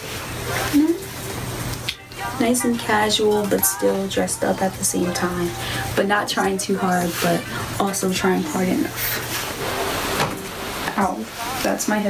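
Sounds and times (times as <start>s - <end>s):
rustling rubbing noise: 8.5s - 11.9s.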